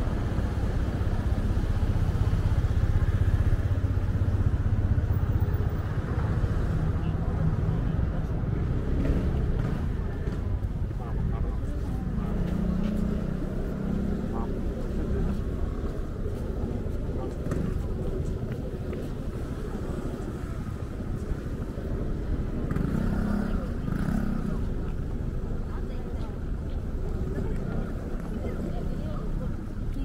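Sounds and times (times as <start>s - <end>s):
low rumble of traffic: 0.0s - 30.0s
people talking: 5.2s - 13.1s, 14.0s - 30.0s.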